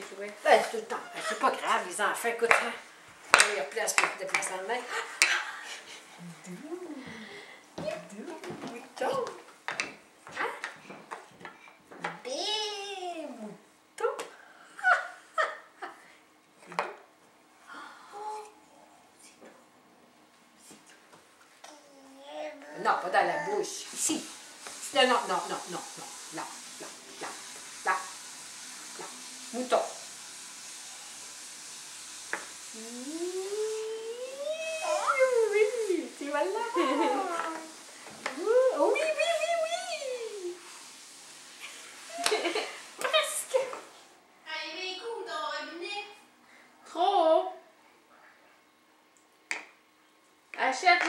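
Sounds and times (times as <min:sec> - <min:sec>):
steady background hiss: 0:00.0 - 0:51.0.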